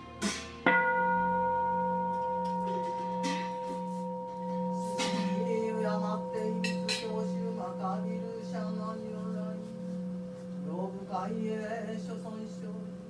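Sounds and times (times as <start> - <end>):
bowl bell ringing: 0.6 - 13.0.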